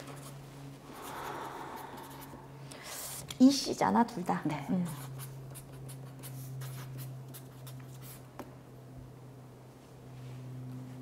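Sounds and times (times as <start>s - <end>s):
steady low hum: 0.0s - 11.0s
pen scratching on paper: 4.9s - 8.2s.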